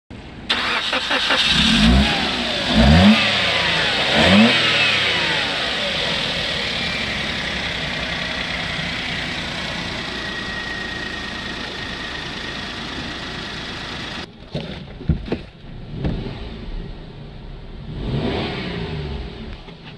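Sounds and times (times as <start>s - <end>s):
car engine idling: 0.2s - 14.4s
car engine starting and revving: 0.5s - 14.3s, 15.6s - 19.9s.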